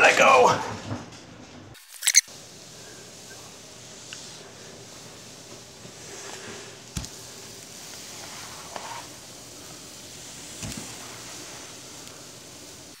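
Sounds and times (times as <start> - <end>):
room hiss: 0.0 - 13.0.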